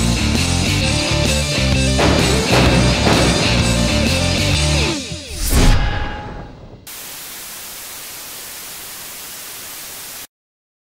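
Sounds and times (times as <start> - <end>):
background music: 0.0 - 5.6
steady static hiss: 6.9 - 10.3.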